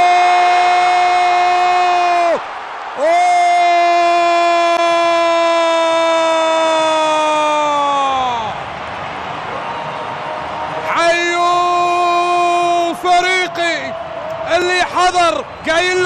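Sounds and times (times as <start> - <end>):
crowd noise: 0.0 - 16.0
commentator shouting: 10.8 - 16.0.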